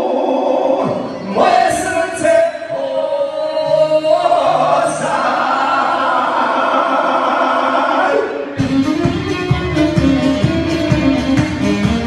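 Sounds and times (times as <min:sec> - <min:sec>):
man and woman singing: 0:00.0 - 0:08.4.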